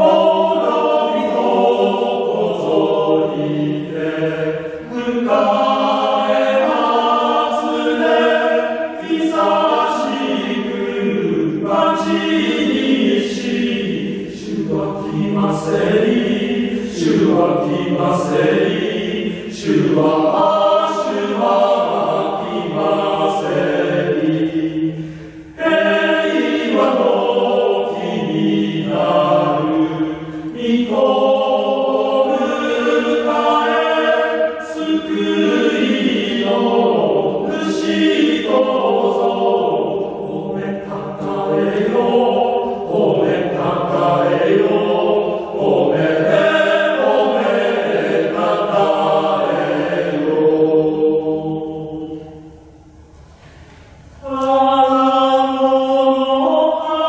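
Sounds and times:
male choir singing in harmony: 0:00.0 - 0:57.0.

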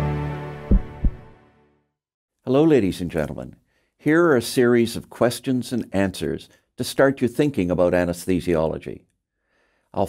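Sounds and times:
double low thump: 0:00.7 - 0:01.3.

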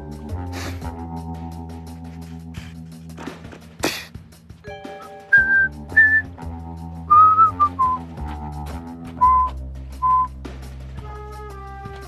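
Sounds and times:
soft background music: 0:00.0 - 0:12.0
person whistling a tune: 0:04.9 - 0:06.3, 0:07.1 - 0:08.1, 0:09.2 - 0:10.4.

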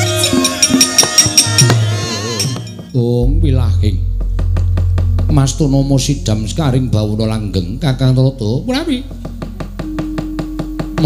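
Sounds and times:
soft gamelan accompaniment: 0:00.0 - 0:11.0.

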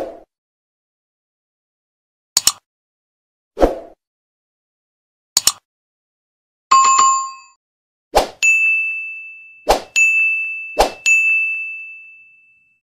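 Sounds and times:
bright ringing ding: 0:06.7 - 0:07.6, 0:08.4 - 0:12.8
lower chime: 0:08.4 - 0:12.8.

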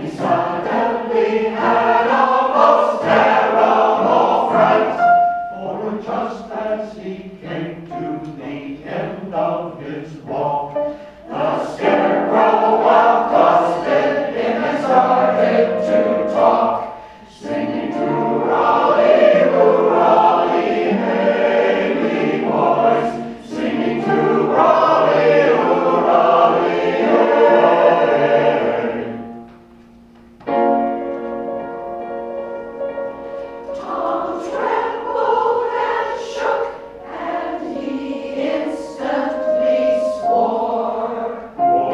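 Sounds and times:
mixed choir singing: 0:00.0 - 0:29.5, 0:33.3 - 0:41.9.

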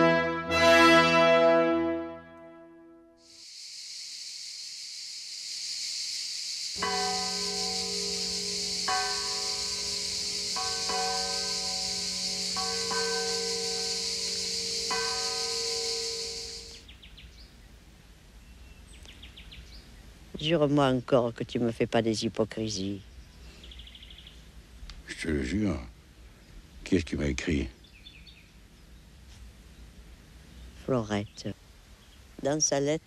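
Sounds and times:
high-pitched hiss: 0:03.2 - 0:16.9
church bell tolling: 0:06.8 - 0:16.8.

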